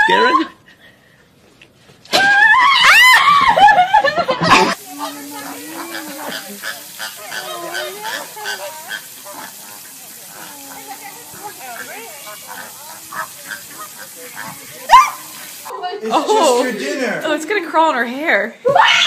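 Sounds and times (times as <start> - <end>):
flamingos honking and grunting: 4.6 - 15.7.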